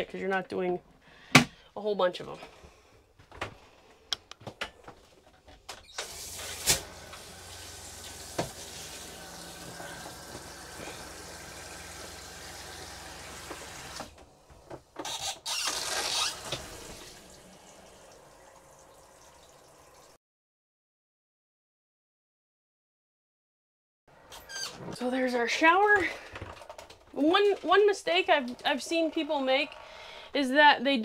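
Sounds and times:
liquid flowing from shower hose: 0:06.0 - 0:14.1, 0:15.4 - 0:20.2.

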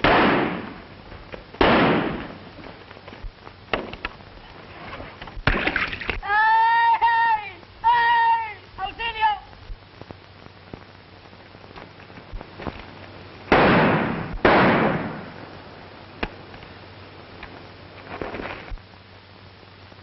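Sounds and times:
gunshots with echo: 0:00.0 - 0:00.8, 0:01.6 - 0:02.3, 0:13.5 - 0:15.3
faint cracks: 0:00.0 - 0:06.3, 0:09.5 - 0:16.7, 0:17.3 - 0:18.9
high-pitched voice crying out: 0:06.2 - 0:09.4.

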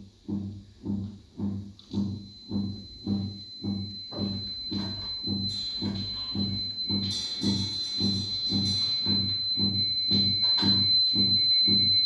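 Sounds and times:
low deep electronic pulse: 0:02.0 - 0:12.0
high whistling tone: 0:02.2 - 0:12.0.

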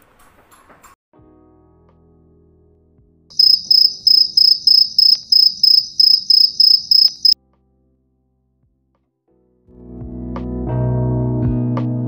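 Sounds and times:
high-pitched chirping: 0:03.4 - 0:07.4.

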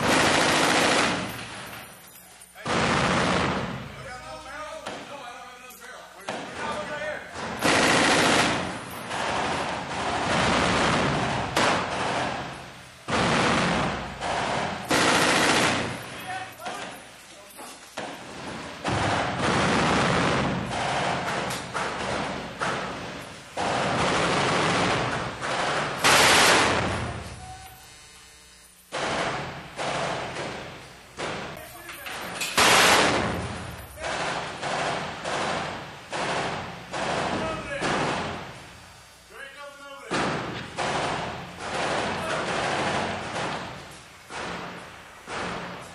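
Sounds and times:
machine guns firing: 0:00.0 - 0:01.9, 0:02.6 - 0:04.4, 0:06.3 - 0:17.0, 0:18.0 - 0:27.5, 0:28.9 - 0:38.6, 0:40.0 - 0:45.9.

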